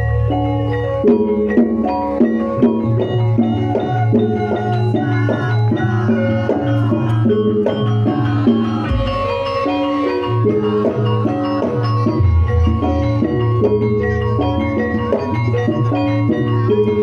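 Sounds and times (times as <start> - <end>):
repeating melody of pitched notes: 0.0 - 17.0
steady low beat: 6.8 - 9.6, 12.0 - 15.0.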